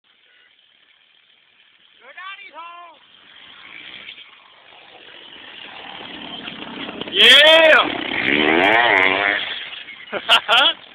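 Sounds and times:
motorcycle engine running: 0.1s - 10.9s.

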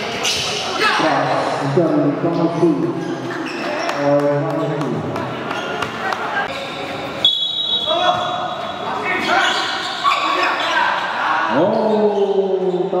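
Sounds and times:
players' voices calling: 7.6s - 13.0s.

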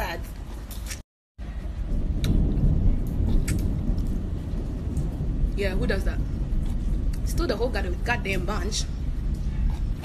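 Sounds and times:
low rumble: 1.4s - 10.0s.

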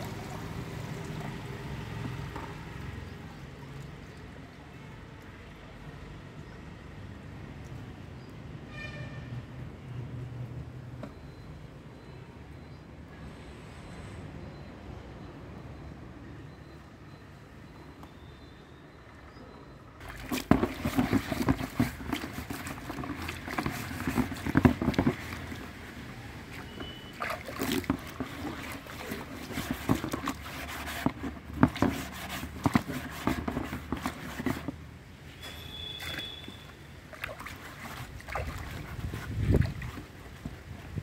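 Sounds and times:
water sloshing in plastic tub: 0.0s - 5.7s, 20.0s - 41.0s.

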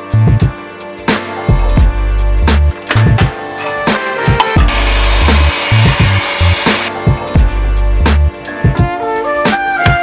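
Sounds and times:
music with steady beat: 0.0s - 10.0s
handheld vacuum running: 4.6s - 6.9s.

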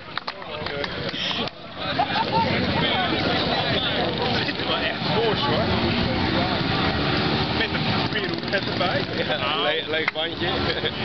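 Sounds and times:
people talking: 0.0s - 11.0s
moped engine passing: 1.0s - 11.0s.

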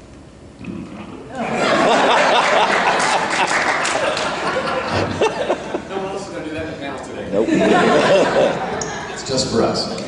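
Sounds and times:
audience laughter: 1.3s - 5.9s, 7.4s - 9.3s
audience applause: 1.5s - 5.2s.

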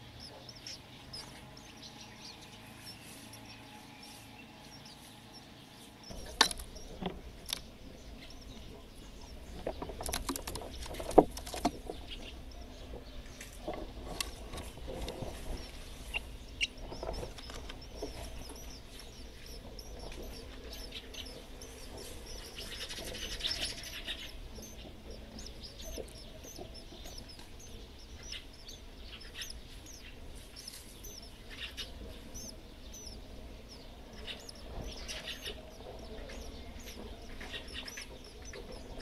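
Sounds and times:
sparrows chirping: 0.0s - 39.0s.

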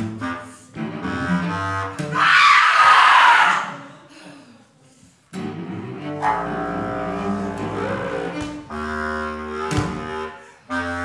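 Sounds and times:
cello low notes: 0.0s - 2.2s, 5.3s - 11.0s
bass clarinet low notes: 0.0s - 2.3s, 5.3s - 11.0s.

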